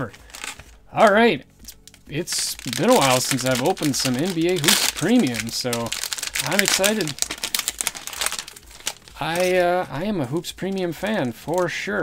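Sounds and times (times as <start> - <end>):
foil wrapper crinkling: 0.0 - 12.0.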